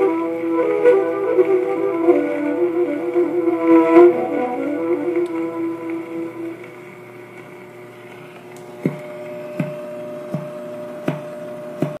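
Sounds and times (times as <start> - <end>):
amplifier hum: 0.0 - 11.8.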